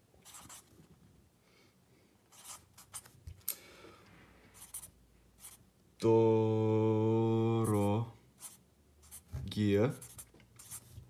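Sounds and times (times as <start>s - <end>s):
marker writing on paper: 0.2s - 0.7s, 2.3s - 3.2s, 4.6s - 5.6s, 7.7s - 11.0s.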